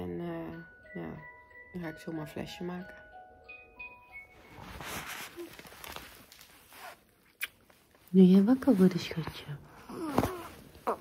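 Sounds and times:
rustling and handling noises: 4.2s - 11.0s.

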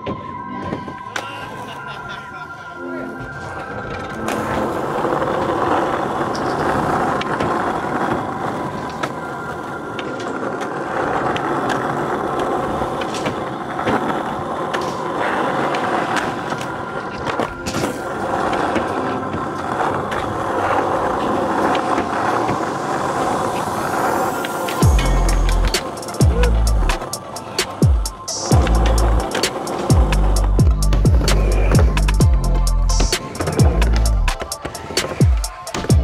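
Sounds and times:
skateboard wheels rolling on concrete: 0.0s - 36.0s
skateboard clacks: 3.6s - 36.0s.

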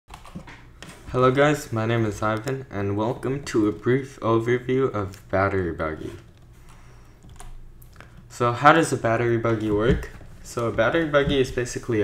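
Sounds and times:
faint electrical hum: 0.1s - 12.0s.

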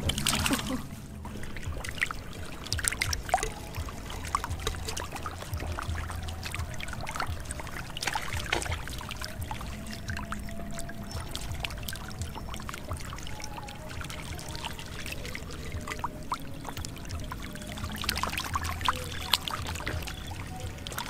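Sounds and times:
background music: 0.0s - 21.0s
fish splashing in water: 0.0s - 21.0s.

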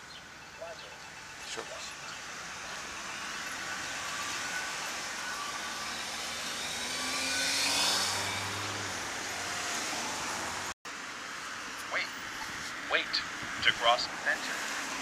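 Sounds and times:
street traffic: 0.0s - 15.0s
car passing close: 1.8s - 10.8s.

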